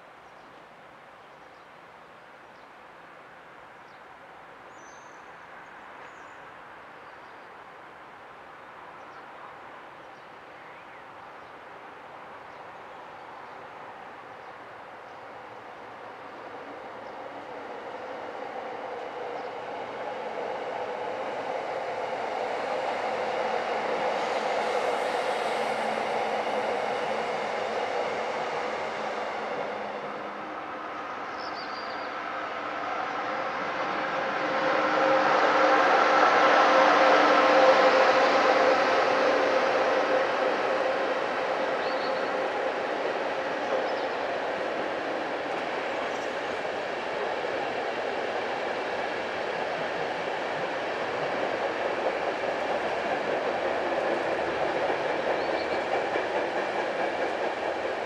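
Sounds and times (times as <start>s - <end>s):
train running over bridge: 7.6s - 58.0s.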